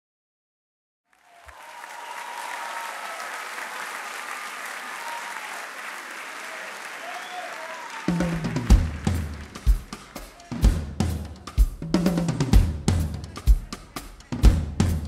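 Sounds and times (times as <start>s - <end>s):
audience applauding and cheering: 1.1s - 10.9s.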